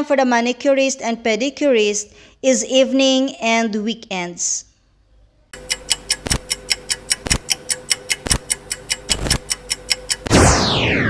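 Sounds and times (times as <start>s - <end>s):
timer ticking: 5.6s - 10.4s.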